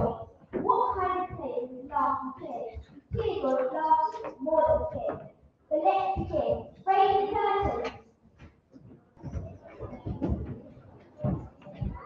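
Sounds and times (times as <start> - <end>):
child singing into a microphone: 0.0 - 7.9.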